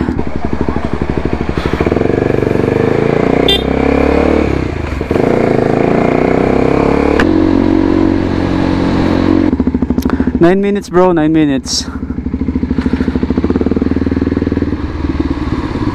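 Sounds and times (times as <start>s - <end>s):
motorcycle engine accelerating: 0.0s - 15.9s.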